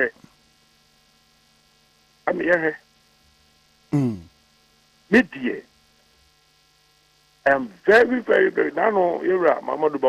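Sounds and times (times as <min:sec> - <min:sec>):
faint electrical hum: 0:00.0 - 0:10.0
man humming mm: 0:03.9 - 0:04.4.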